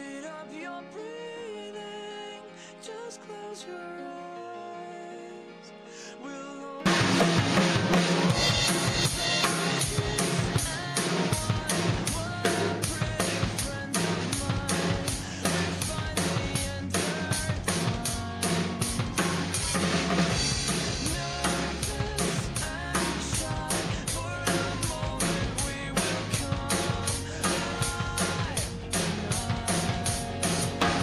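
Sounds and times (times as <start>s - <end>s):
full band song: 6.8s - 31.0s
drum kit playing rock beat: 6.9s - 31.0s.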